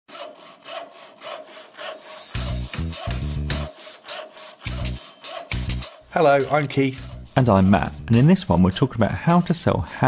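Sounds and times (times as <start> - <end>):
hand saw cutting wood: 0.1 - 8.3.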